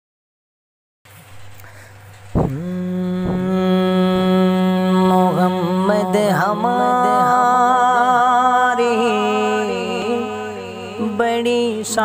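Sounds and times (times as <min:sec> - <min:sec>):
faint low hum: 0:01.1 - 0:06.2
man singing a held note: 0:02.4 - 0:12.0.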